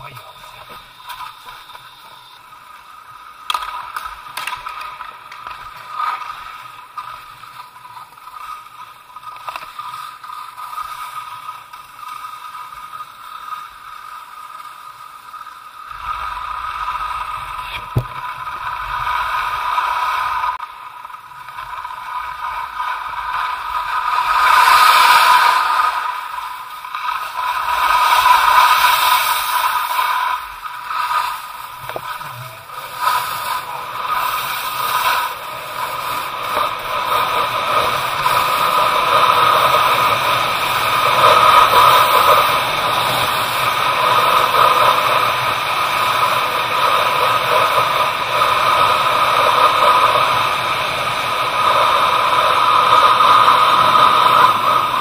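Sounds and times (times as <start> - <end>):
skis scraping over snow: 0.0 - 55.0.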